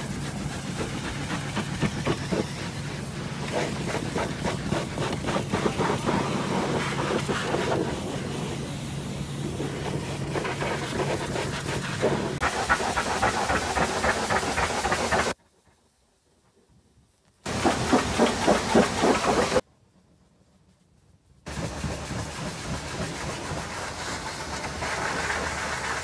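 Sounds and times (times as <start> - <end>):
pressure washer spraying water: 0.0 - 15.4, 17.5 - 19.6, 21.5 - 26.0.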